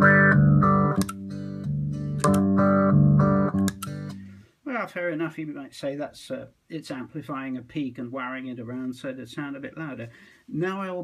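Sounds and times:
amplified guitar playing: 0.0 - 4.4.

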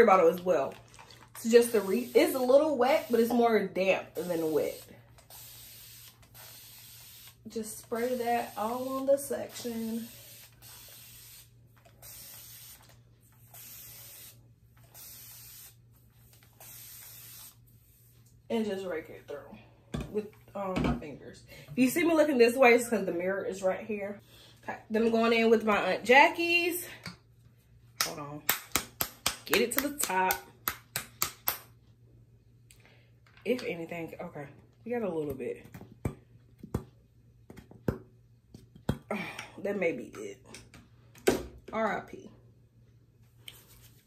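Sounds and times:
plastic bottle being shaken: 0.6 - 1.5
spray bottle hissing: 1.6 - 3.4, 4.2 - 15.8, 16.4 - 17.6.

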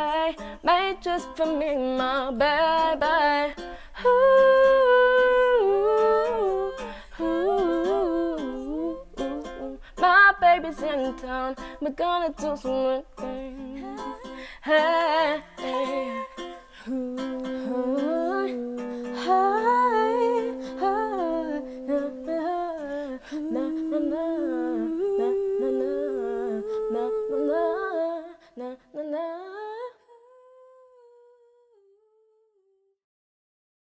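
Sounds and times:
plucked strings: 0.0 - 26.4
female vocals humming in harmony: 4.0 - 11.4, 12.4 - 31.6.

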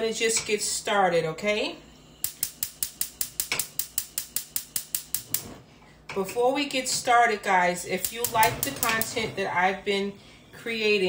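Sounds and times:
gas stove igniter clicking: 2.2 - 6.3, 7.9 - 9.2.

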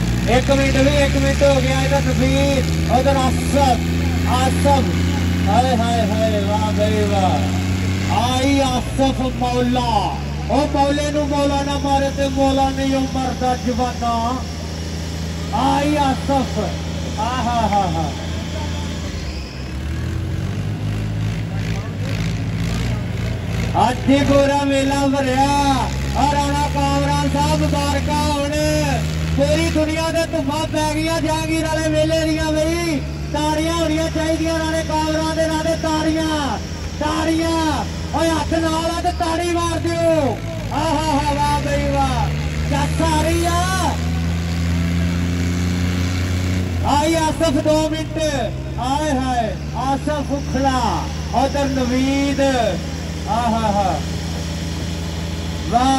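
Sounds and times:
man speaking over loudspeaker: 0.0 - 19.2, 21.2 - 45.2, 46.8 - 54.3, 55.6 - 55.9
tractor diesel engines under load: 0.0 - 55.9.

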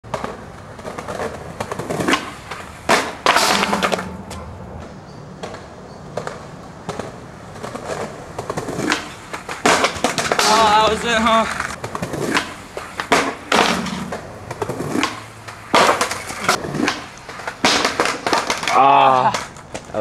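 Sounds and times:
skateboard clacks: 0.0 - 20.0
skateboard scraping: 0.0 - 20.0
skateboard wheels rolling on concrete: 0.0 - 20.0
skateboard crashing: 0.1 - 19.9.

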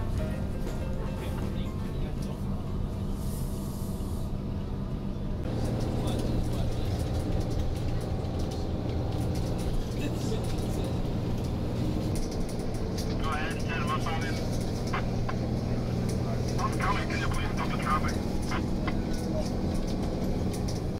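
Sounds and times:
van engine and tyre hum: 0.0 - 20.9.

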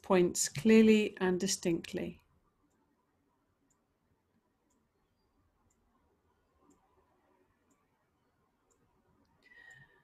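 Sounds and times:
woman speaking softly: 0.0 - 2.2.

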